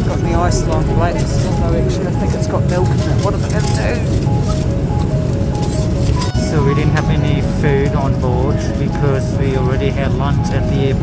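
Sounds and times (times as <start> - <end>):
airliner cabin drone: 0.0 - 11.0.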